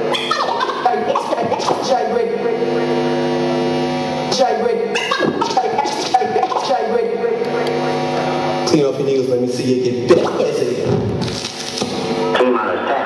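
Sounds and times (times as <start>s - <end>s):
droning record note: 0.0s - 13.0s.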